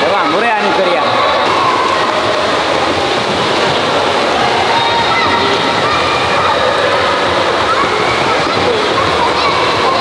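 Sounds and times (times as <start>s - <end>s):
faint voices: 0.0s - 10.0s
water splashing in indoor pool: 0.0s - 10.0s.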